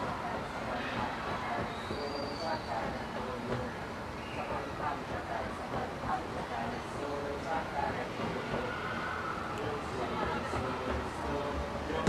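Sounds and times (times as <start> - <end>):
group of people chattering: 0.0 - 12.0
steady background hiss: 0.0 - 12.0.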